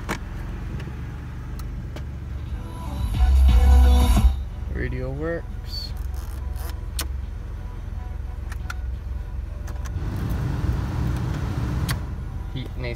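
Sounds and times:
car engine idling: 0.0 - 12.9.

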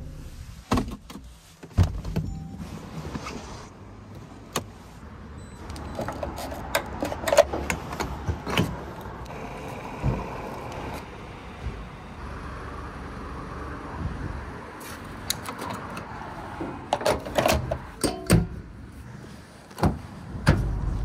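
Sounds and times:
fuel pumping hiss: 9.3 - 12.0.

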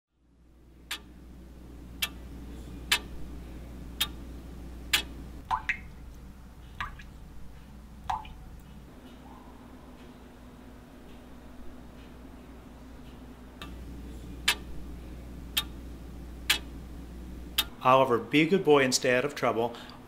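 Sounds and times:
low hum: 0.2 - 18.6
clock ticking: 0.9 - 1.1, 2.0 - 3.2, 3.9 - 4.3, 4.9 - 5.8, 14.4 - 14.7, 15.5 - 16.8, 17.5 - 17.8
faucet dripping: 2.0 - 2.2, 2.9 - 3.2, 3.9 - 4.3, 4.9 - 7.3, 8.0 - 8.6, 15.5 - 15.8, 16.4 - 16.8.

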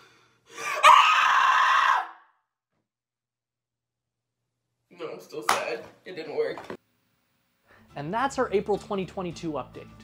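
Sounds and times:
girl screaming: 0.6 - 2.3.

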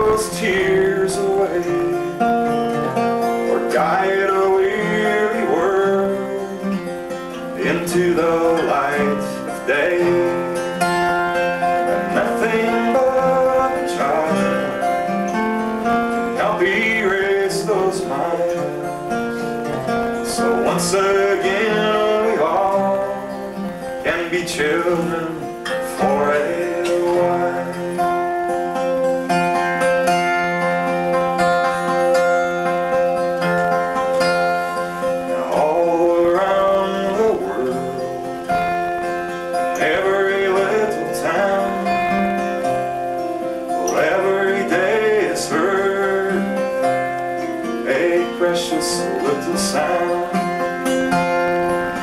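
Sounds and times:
man singing: 0.0 - 29.4, 34.2 - 52.0
acoustic guitar plucked: 0.0 - 52.0.

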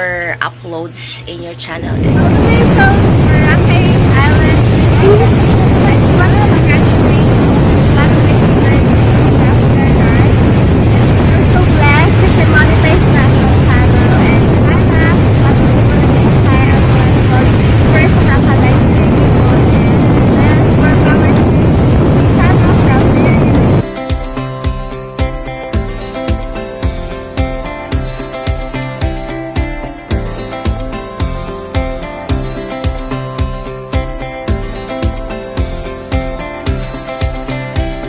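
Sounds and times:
wind rumble on microphone: 0.0 - 23.9
sea waves washing: 1.8 - 23.8.

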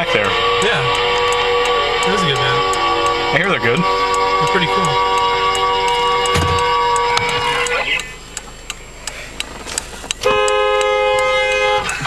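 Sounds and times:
car horn blasts: 0.0 - 8.2, 10.2 - 12.0.

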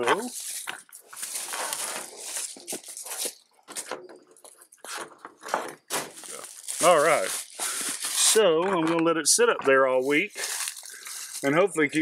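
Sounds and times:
rustling and scraping of handling: 0.0 - 12.0.

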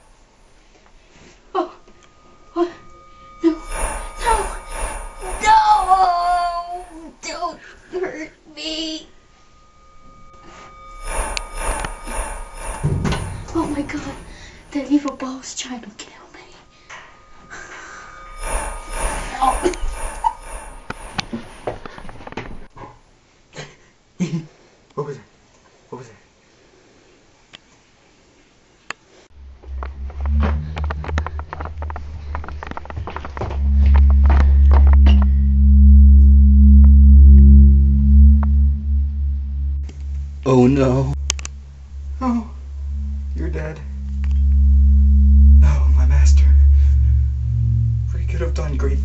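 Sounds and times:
loud low drone: 0.0 - 7.3, 8.7 - 15.3, 16.7 - 22.4, 29.4 - 49.0
faint steady tones: 0.0 - 22.7, 29.4 - 49.0.

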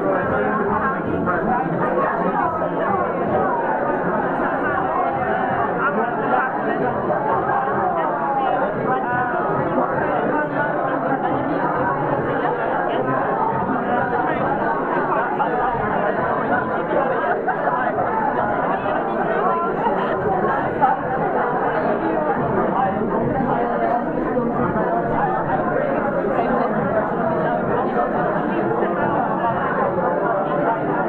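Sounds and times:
crowd chatter: 0.0 - 31.0.

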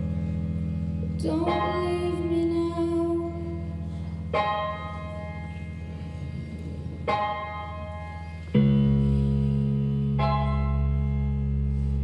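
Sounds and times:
low bass drone: 0.0 - 12.0.

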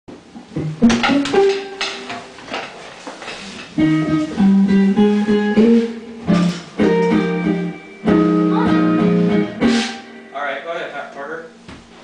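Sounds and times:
sharp drum hits: 9.6 - 10.2.

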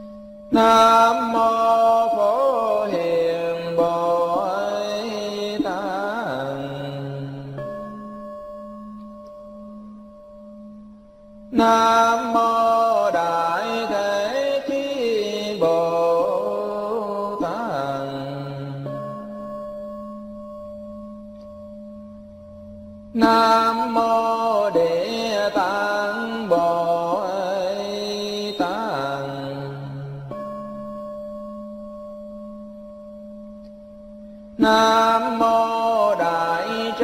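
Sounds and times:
person chanting: 0.5 - 7.9, 11.5 - 19.4, 23.1 - 30.4, 34.6 - 37.0.

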